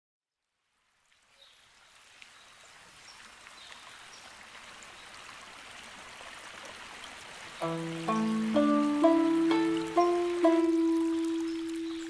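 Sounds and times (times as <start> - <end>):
stream flowing and trickling: 0.4 - 12.0
faint water plinks: 6.6 - 12.0.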